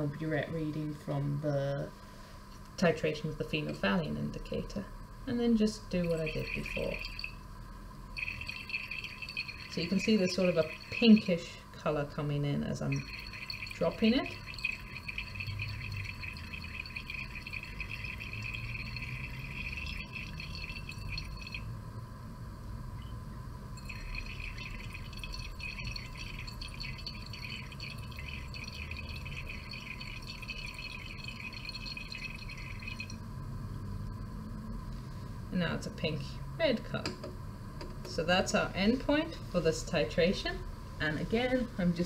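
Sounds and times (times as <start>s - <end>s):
liquid swirling in glass flask: 5.9s - 7.4s, 8.1s - 21.7s, 23.8s - 33.2s.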